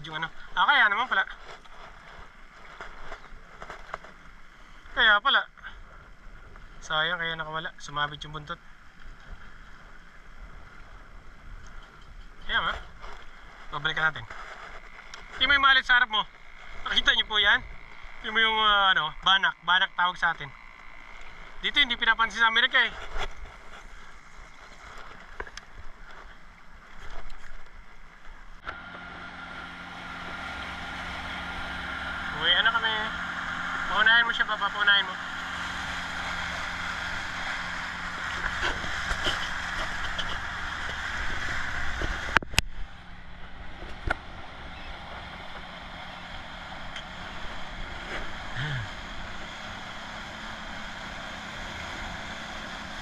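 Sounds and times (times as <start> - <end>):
outboard motor running: 0.0 - 53.0.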